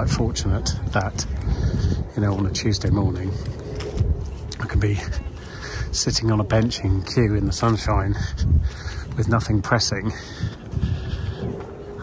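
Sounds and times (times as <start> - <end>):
low rumble: 0.0 - 12.0.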